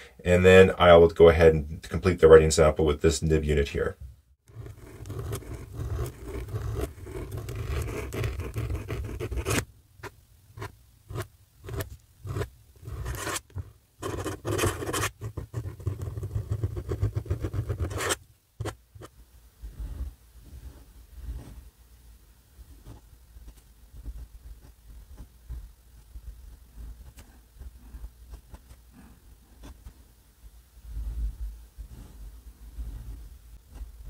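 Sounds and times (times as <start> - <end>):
pen nib scratching on paper: 4.5 - 19.1, 22.8 - 30.0.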